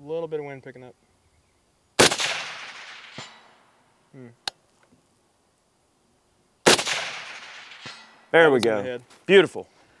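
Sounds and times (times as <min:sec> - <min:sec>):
bullet pinging steel target: 0:02.0 - 0:03.6, 0:06.7 - 0:08.7
suppressed rifle shot: 0:02.0 - 0:03.6, 0:06.6 - 0:08.3.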